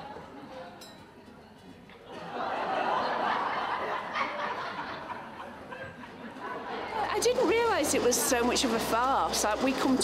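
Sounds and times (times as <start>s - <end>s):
audience laughing: 2.0s - 8.4s.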